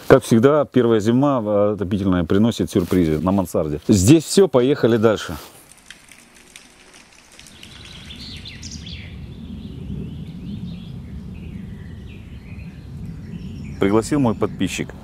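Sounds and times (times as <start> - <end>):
birds chirping: 6.1 - 15.0.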